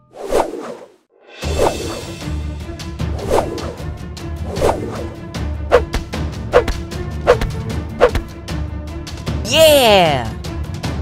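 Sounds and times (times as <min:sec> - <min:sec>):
background music: 0:01.3 - 0:11.0.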